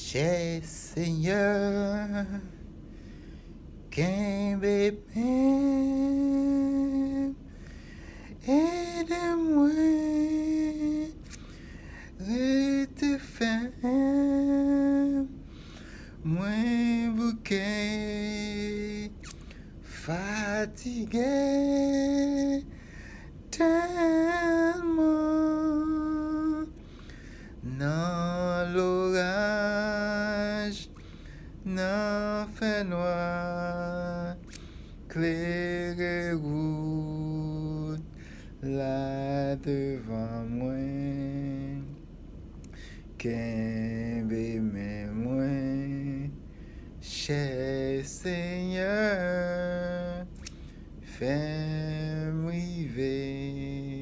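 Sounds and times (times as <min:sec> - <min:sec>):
man singing unaccompanied: 0:00.0 - 0:02.6, 0:03.9 - 0:07.5, 0:08.3 - 0:15.4, 0:16.2 - 0:22.8, 0:23.4 - 0:26.8, 0:27.6 - 0:31.0, 0:31.6 - 0:42.0, 0:43.2 - 0:54.0
quick breath: 0:07.5 - 0:08.4, 0:11.3 - 0:12.2, 0:15.4 - 0:16.2, 0:22.7 - 0:23.4, 0:26.8 - 0:27.6, 0:42.7 - 0:43.1.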